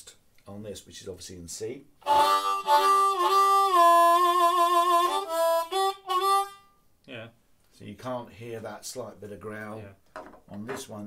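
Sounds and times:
harmonica playing held chords: 2.0s - 6.8s.

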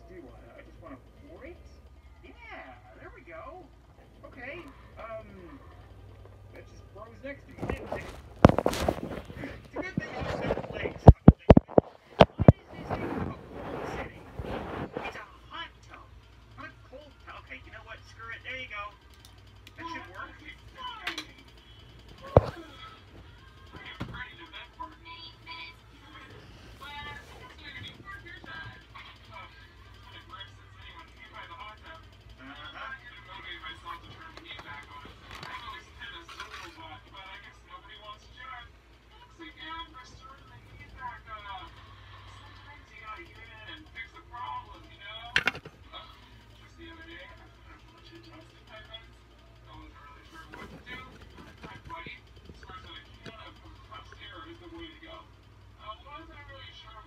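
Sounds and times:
phone being handled: 7.6s - 13.3s, 45.3s - 45.8s.

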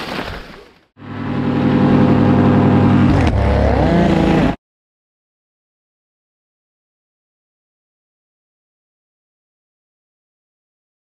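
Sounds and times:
two-stroke engine running loud: 1.0s - 4.6s.

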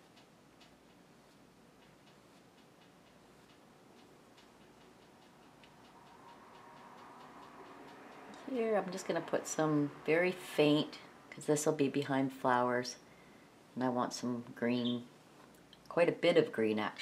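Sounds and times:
paintbrush dabbing canvas: 0.0s - 8.3s.

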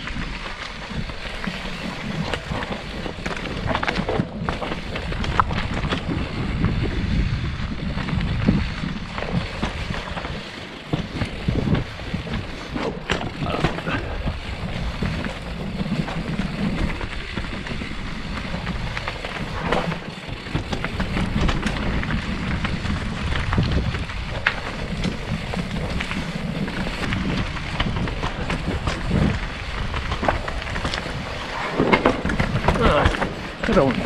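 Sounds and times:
bike knocks and rattles: 0.0s - 34.0s
tyres crunching over stones: 0.0s - 34.0s
wind noise on microphone: 0.0s - 34.0s.

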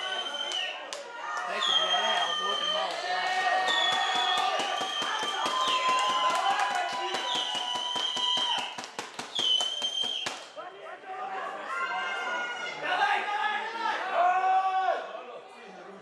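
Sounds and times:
people shouting: 0.0s - 8.7s
rapid sharp knocks: 3.9s - 10.4s.

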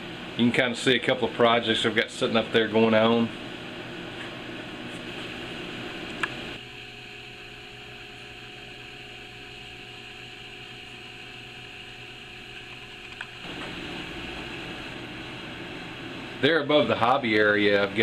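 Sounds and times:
low mechanical hum and hiss: 0.0s - 18.0s.

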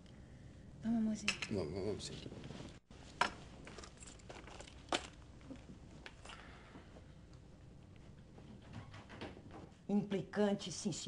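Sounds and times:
footsteps walking across a room: 5.7s - 9.9s.

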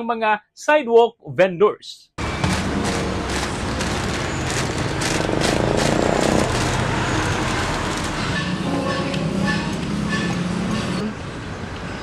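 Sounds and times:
road traffic passing: 2.2s - 12.0s.

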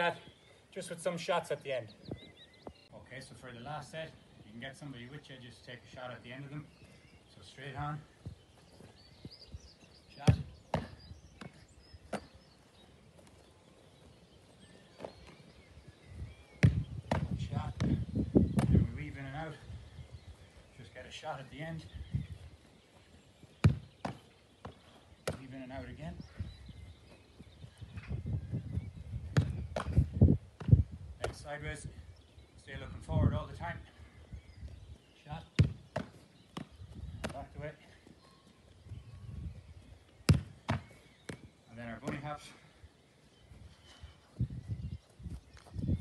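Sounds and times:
faint birdsong: 0.0s - 46.0s
feet thudding on grass: 8.0s - 19.0s, 22.1s - 25.6s, 35.5s - 38.1s, 40.2s - 42.3s
ball thuds: 10.2s - 12.4s, 16.6s - 18.9s, 23.6s - 25.5s, 29.3s - 31.4s, 35.5s - 37.6s, 40.2s - 41.4s
football being kicked: 10.2s - 12.4s, 16.5s - 18.9s, 23.6s - 25.5s, 29.2s - 31.4s, 35.5s - 37.5s, 40.2s - 41.5s.

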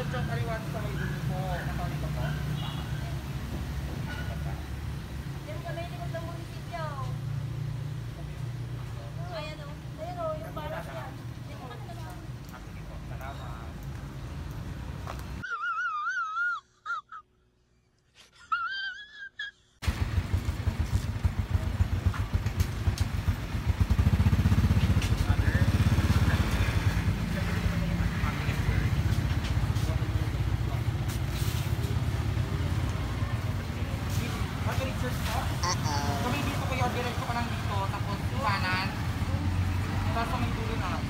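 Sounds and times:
motorcycles passing: 0.0s - 15.4s, 19.8s - 41.0s.

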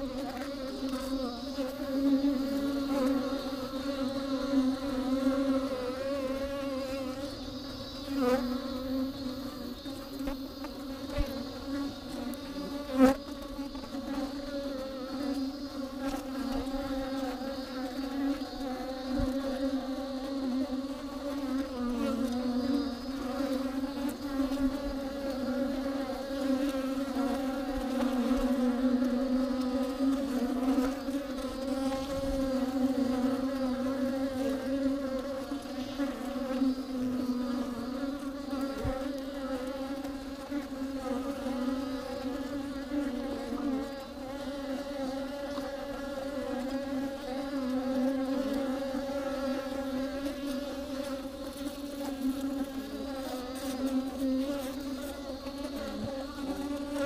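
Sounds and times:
bees buzzing: 0.0s - 57.0s.

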